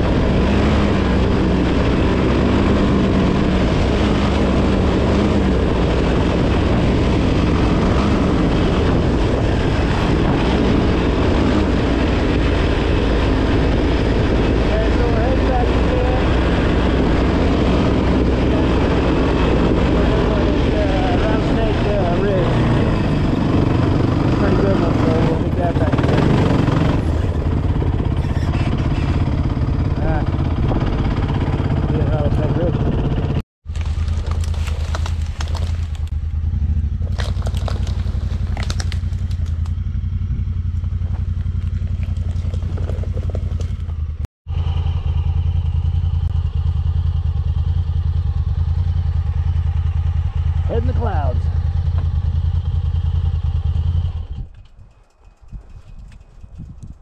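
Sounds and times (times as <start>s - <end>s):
off-road vehicle engine idling: 19.9s - 57.0s.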